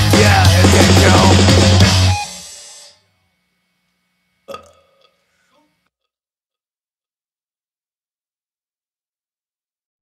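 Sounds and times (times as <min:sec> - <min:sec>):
person belching: 0:04.5 - 0:05.7.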